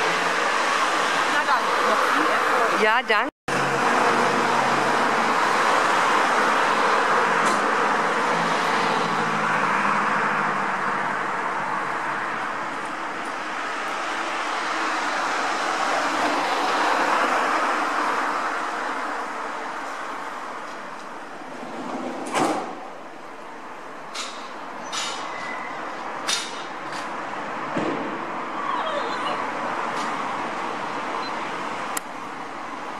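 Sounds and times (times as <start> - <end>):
passing road traffic: 0.0 - 32.9.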